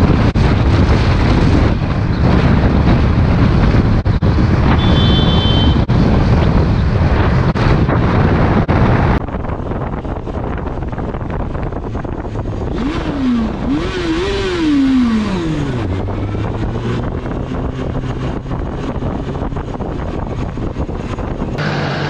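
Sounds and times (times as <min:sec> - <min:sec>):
road noise: 0:00.0 - 0:22.0
wind rush: 0:00.0 - 0:22.0
engine revving: 0:12.0 - 0:22.0.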